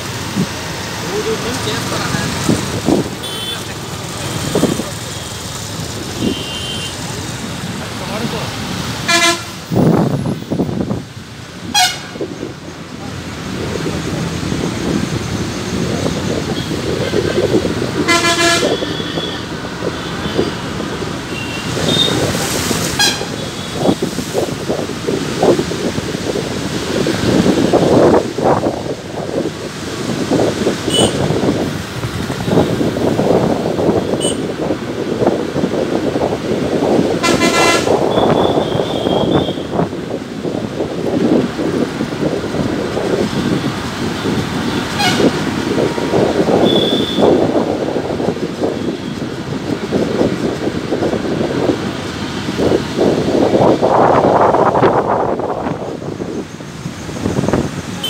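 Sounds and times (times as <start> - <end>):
road and engine noise: 0.0 - 58.0
vehicle horn toots: 3.2 - 3.6, 6.2 - 7.0, 9.1 - 9.5, 11.7 - 12.2, 18.0 - 19.4, 23.0 - 23.5, 30.9 - 31.2, 34.2 - 34.4, 37.2 - 39.7, 44.9 - 45.4, 46.6 - 47.4.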